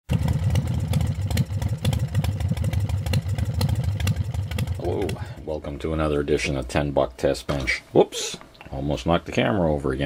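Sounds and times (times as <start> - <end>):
engine running with lumpy beat: 0.1 - 5.5.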